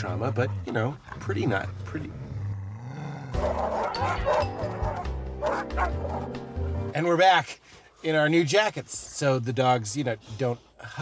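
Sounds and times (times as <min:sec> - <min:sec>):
dogs barking and yipping: 0:03.4 - 0:06.7.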